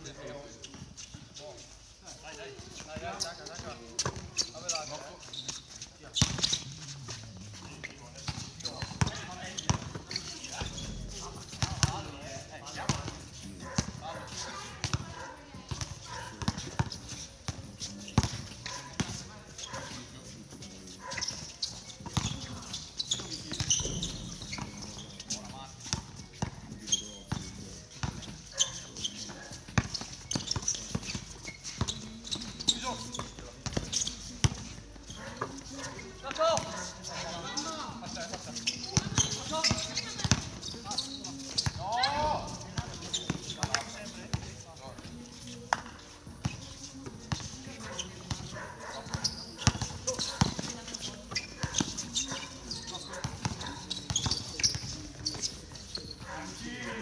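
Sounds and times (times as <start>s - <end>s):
basketball bouncing on court: 8.2s - 12.2s, 12.9s - 13.2s, 13.8s - 17.6s, 21.9s - 25.0s, 27.3s - 28.9s, 29.6s - 34.7s, 38.9s - 41.9s, 47.3s - 52.5s, 53.2s - 55.7s.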